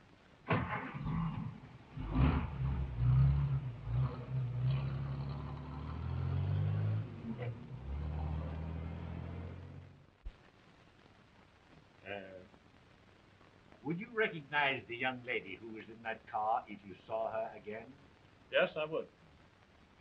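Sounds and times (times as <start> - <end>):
car engine revving: 0.5 - 10.1.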